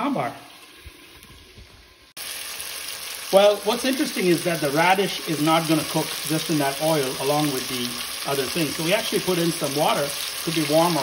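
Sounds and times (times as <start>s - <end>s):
vegetables sizzling in oil: 0.0s - 11.0s.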